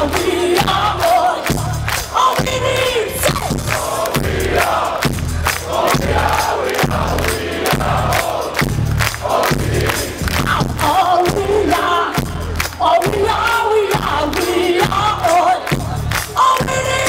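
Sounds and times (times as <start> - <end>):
bass guitar: 0.0 - 17.0
crowd chanting and shouting: 0.0 - 17.0
drum hits: 3.2 - 11.6.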